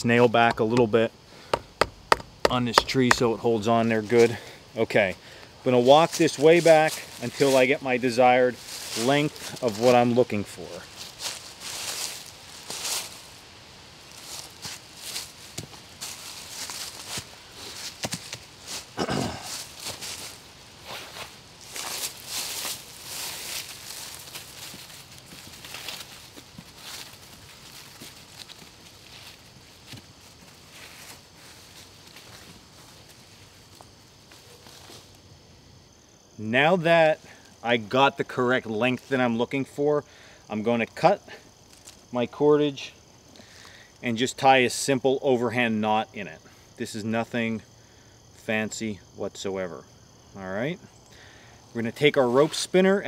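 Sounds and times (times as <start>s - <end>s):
footsteps through dry leaves: 5.9s - 13.4s, 14.0s - 33.7s.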